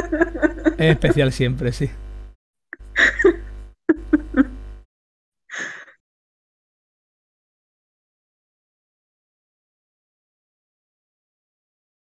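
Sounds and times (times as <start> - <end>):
person gasping breath: 5.5 - 6.0.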